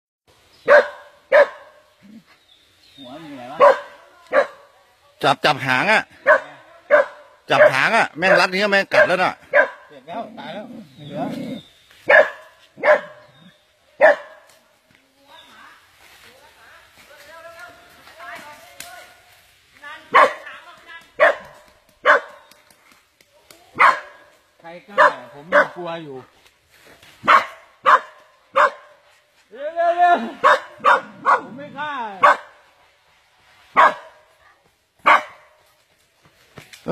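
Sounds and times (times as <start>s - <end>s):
dog barking: 0.6s - 1.9s, 3.5s - 4.8s, 6.2s - 10.0s, 12.0s - 14.5s, 20.1s - 20.5s, 21.2s - 22.5s, 23.8s - 24.3s, 24.9s - 25.9s, 27.2s - 29.0s, 30.3s - 32.6s, 33.7s - 34.4s, 35.0s - 35.6s.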